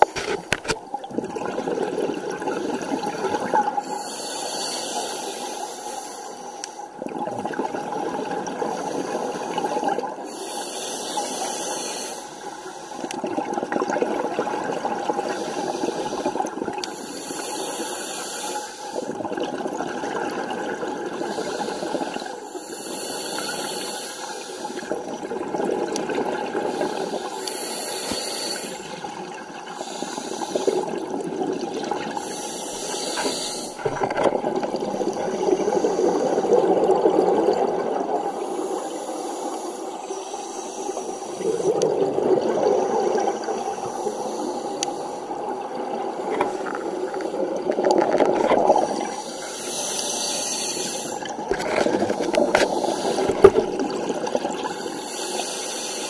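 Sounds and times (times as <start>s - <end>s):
regulator hissing inhalation: 3.8s - 7.0s, 10.2s - 13.1s, 16.9s - 19.1s, 21.3s - 24.9s, 26.7s - 29.0s, 29.8s - 31.0s, 32.2s - 34.0s, 38.3s - 41.6s, 43.6s - 45.5s, 48.7s - 53.8s, 54.6s - 56.0s
bubbling exhaled air: 13.0s - 55.9s.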